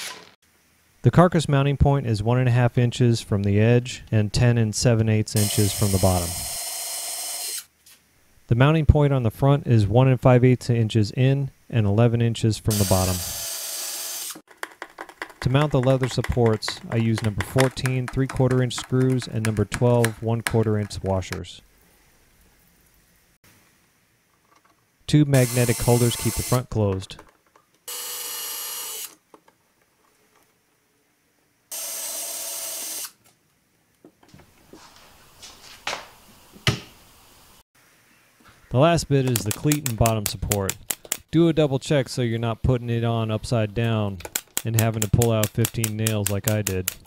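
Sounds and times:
electric drill whining: 5.4s - 7.7s, 12.7s - 14.4s, 27.9s - 29.2s, 31.7s - 33.2s
cordless drill drilling into wood: 12.7s - 14.4s
sharp knocks: 14.5s - 21.0s.

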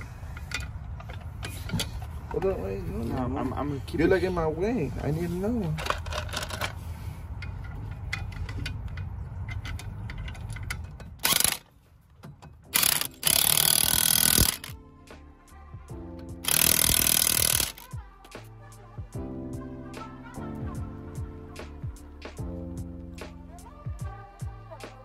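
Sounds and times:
impact wrench tightening nuts: 7.4s - 11.7s, 12.7s - 14.8s, 16.4s - 18.0s.

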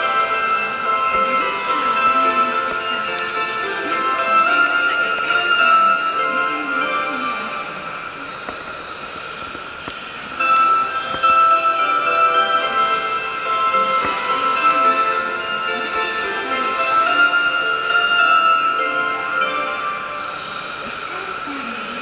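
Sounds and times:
chime melody over loudspeakers: 0.0s - 9.0s, 10.2s - 21.9s.

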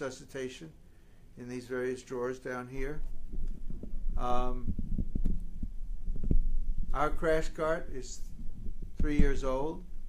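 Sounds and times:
low handling thumps and knocks: 2.8s - 7.3s.

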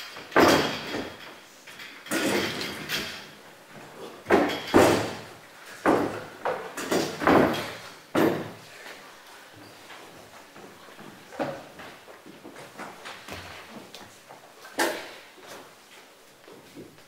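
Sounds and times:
chairs knocking and scraping on floor: 0.0s - 8.9s, 9.5s - 17.0s.

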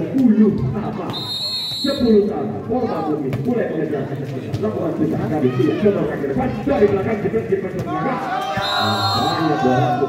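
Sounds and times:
people talking and shouting: 0.0s - 10.0s.

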